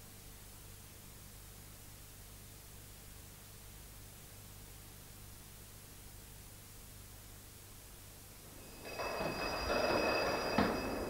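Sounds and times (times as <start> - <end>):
train rumble: 8.5 - 11.0
train wheels squealing: 8.6 - 11.0
knock: 8.9 - 11.0.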